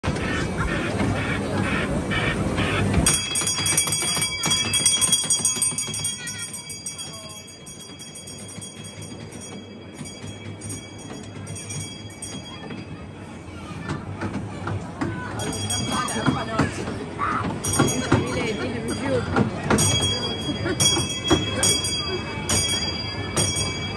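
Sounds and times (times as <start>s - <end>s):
crowd noise: 0.0s - 23.9s
bells jingling: 3.1s - 13.5s, 15.3s - 23.9s.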